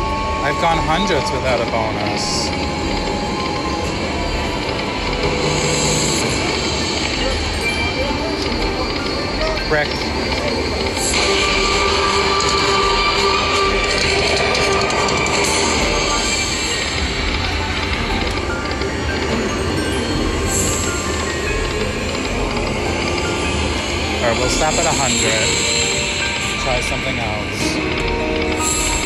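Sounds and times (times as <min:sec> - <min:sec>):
slot machine music and spin sounds: 0:00.0 - 0:29.0.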